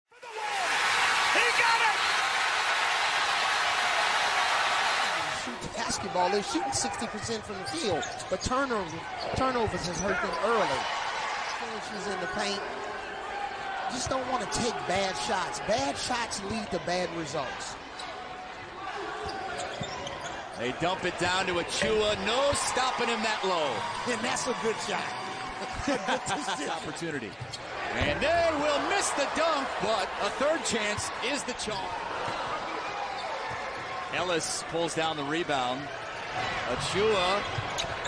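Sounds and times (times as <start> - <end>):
crowd cheering and shouting: 0.1 - 8.0, 8.9 - 19.7, 20.6 - 27.1, 27.7 - 38.0.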